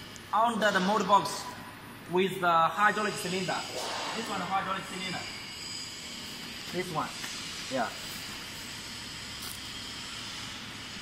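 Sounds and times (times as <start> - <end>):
factory background hiss and rumble: 0.0 - 11.0.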